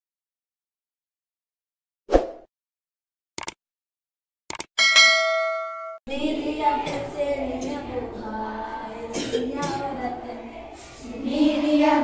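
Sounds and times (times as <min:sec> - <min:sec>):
quick clicks: 0:03.4 - 0:03.6, 0:04.5 - 0:04.7
notification bell ding: 0:04.8 - 0:06.0.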